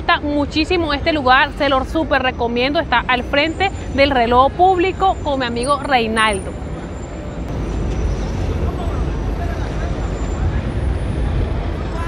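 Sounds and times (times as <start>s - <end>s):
bus engine: 0.0s - 12.0s
low rumble of traffic: 0.0s - 12.0s.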